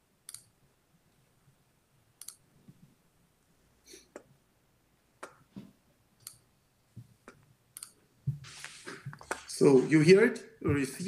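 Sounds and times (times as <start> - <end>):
computer mouse clicks: 0.3 - 0.5, 2.2 - 2.4, 7.3 - 8.0.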